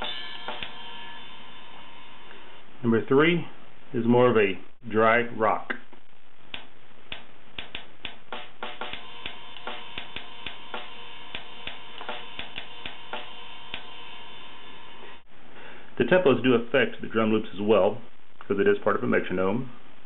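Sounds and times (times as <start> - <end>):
drum loop through phone speaker: 6.5 - 13.8.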